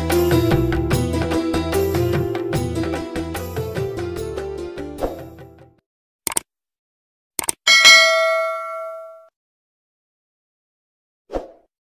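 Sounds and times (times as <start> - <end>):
notification bell ding: 7.7 - 9.3.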